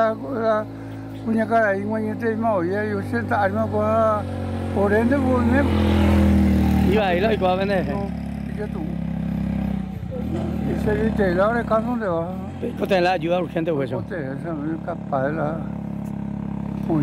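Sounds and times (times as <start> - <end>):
vehicle engine passing: 0.0 - 17.0
man talking: 6.8 - 9.0, 10.4 - 15.8.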